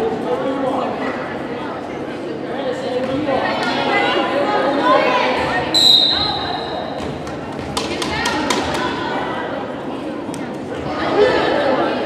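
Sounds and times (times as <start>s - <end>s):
echoing voices: 3.0s - 10.2s
referee's whistle: 5.8s - 7.0s.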